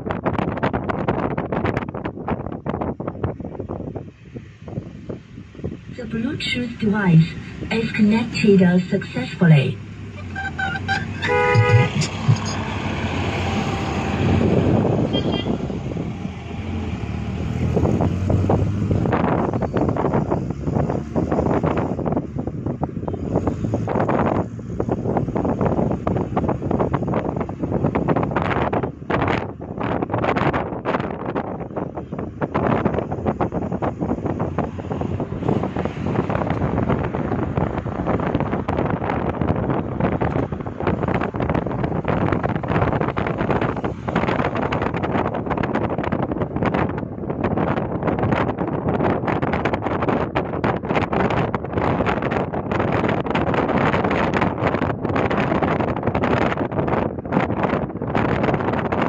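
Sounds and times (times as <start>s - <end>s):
wind buffeting microphone: 0.0s - 8.5s, 9.3s - 59.0s
road noise: 0.0s - 59.0s
vehicle horn toot: 10.3s - 12.6s, 15.1s - 15.6s.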